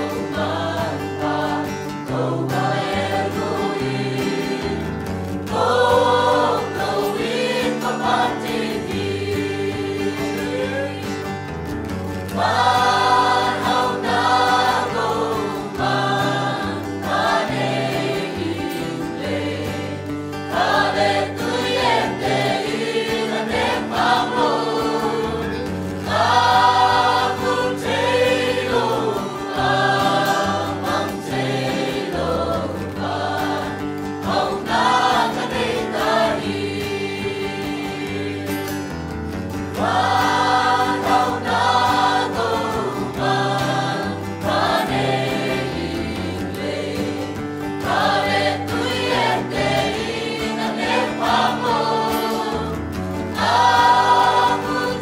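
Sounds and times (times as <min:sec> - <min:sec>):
mixed choir singing a hymn: 0:00.0 - 0:55.0.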